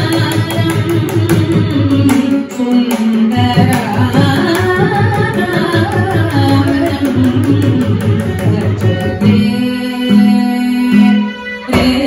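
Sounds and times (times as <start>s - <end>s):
violin accompaniment: 0.0s - 12.0s
woman singing: 0.0s - 12.0s.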